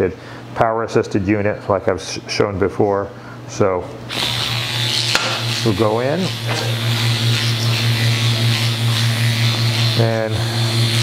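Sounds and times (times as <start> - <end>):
liposuction handpiece buzzing: 4.1 - 11.0.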